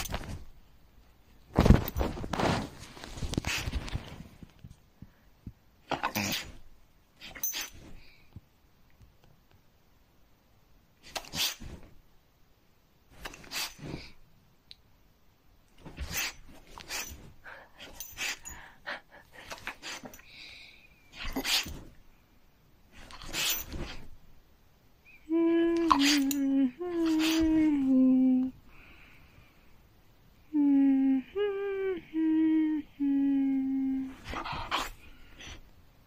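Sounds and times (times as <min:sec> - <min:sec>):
bedding rustling: 0:00.0 - 0:05.2, 0:13.1 - 0:14.2, 0:15.7 - 0:22.2, 0:22.8 - 0:24.5, 0:25.8 - 0:28.3, 0:34.1 - 0:35.9
dog breathing and sniffing: 0:15.9 - 0:20.4, 0:34.1 - 0:35.6.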